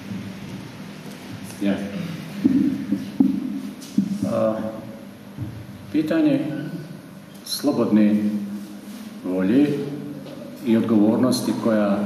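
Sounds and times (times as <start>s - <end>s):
brief knock: 2.4s - 4.3s
man speaking into microphone: 4.2s - 5.0s, 5.9s - 8.6s, 9.2s - 12.0s.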